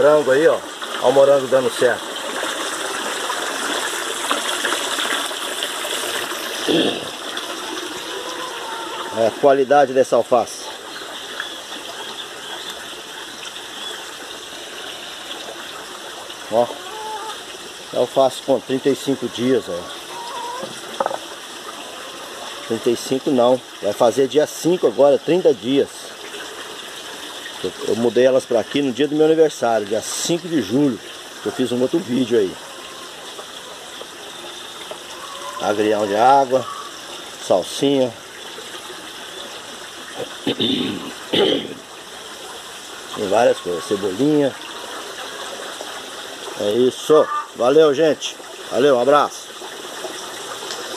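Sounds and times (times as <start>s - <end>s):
water running steadily: 0.0s - 50.9s.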